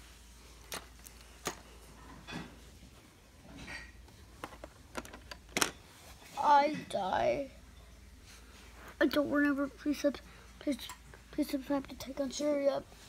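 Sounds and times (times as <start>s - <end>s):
phone being handled: 4.3s - 5.8s.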